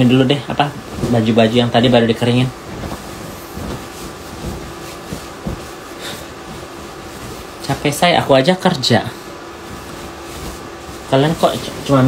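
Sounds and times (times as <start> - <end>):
fabric rustling: 0.0 - 12.0
room noise: 0.0 - 12.0.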